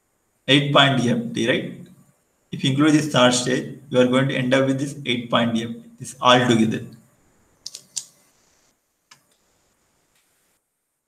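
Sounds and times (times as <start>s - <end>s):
faint hiss: 0.0s - 11.0s
computer clicks: 7.7s - 8.2s.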